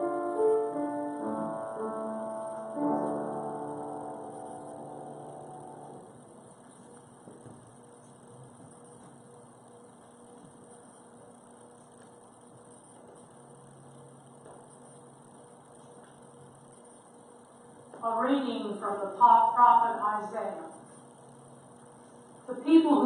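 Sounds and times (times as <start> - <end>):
musical chord: 0.0 - 6.3
low electrical hum: 0.0 - 23.0.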